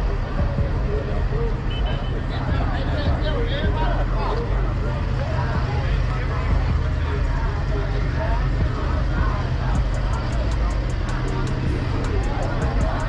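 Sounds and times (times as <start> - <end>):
car engine idling: 0.0 - 13.0
people talking: 0.0 - 13.0.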